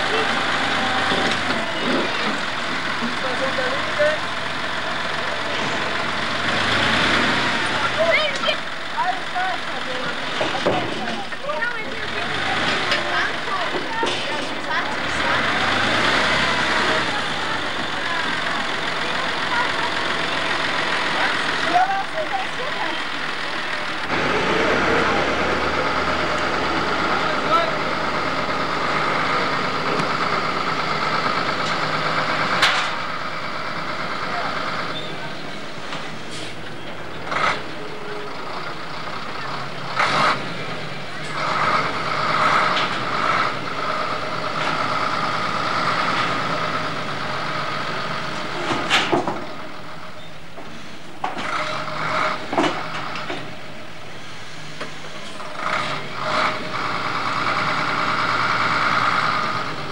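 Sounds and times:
indistinct voices: 0:00.0 - 0:59.9
truck and tractor engines running: 0:00.0 - 0:59.9.

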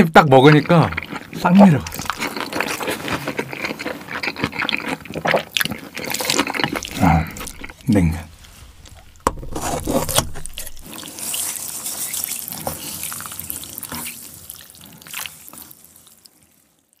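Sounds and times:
paper food wrapper rustling: 0:06.3 - 0:13.8.

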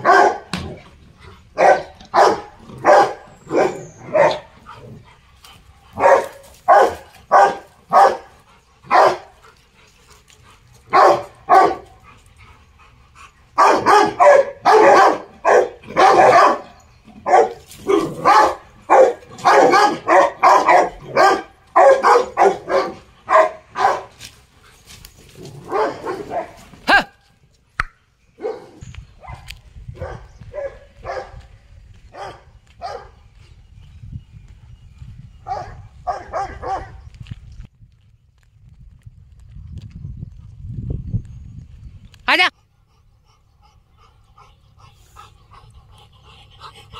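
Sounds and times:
dog barking aggressively: 0:00.0 - 0:00.8, 0:01.5 - 0:05.0, 0:05.9 - 0:09.4, 0:10.9 - 0:12.0, 0:13.6 - 0:24.2, 0:25.4 - 0:26.7, 0:30.0 - 0:31.4, 0:32.2 - 0:33.1, 0:35.5 - 0:37.0.

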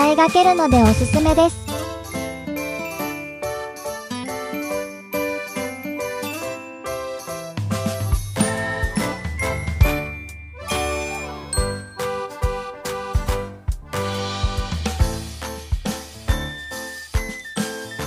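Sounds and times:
bass line: 0:00.0 - 0:02.4
tinkling bell-like tune: 0:00.0 - 0:12.6, 0:16.3 - 0:18.0.

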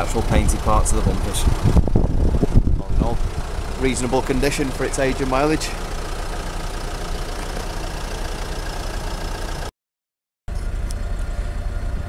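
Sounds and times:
engine idling: 0:00.0 - 0:09.7, 0:10.5 - 0:12.0.

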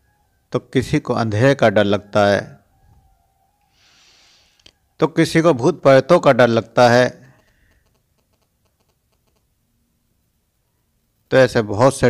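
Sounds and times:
man speaking: 0:00.5 - 0:02.6, 0:05.0 - 0:07.3, 0:11.3 - 0:12.0
rapid light clicking: 0:07.4 - 0:09.5.

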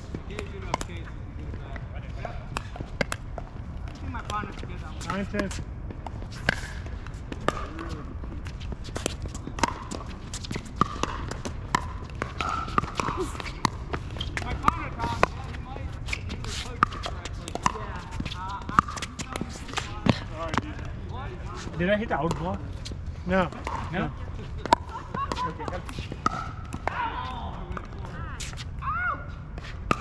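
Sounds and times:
ball bouncing on hard court: 0:00.1 - 0:28.6.

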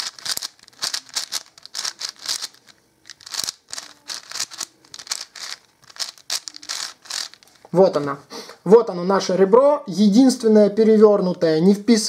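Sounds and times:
puzzle cube clicking: 0:00.0 - 0:07.5.

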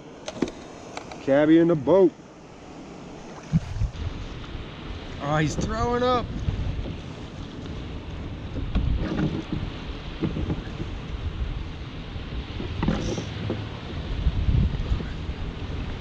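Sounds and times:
choppy sea: 0:00.0 - 0:16.0
wind buffeting microphone: 0:02.9 - 0:16.0.

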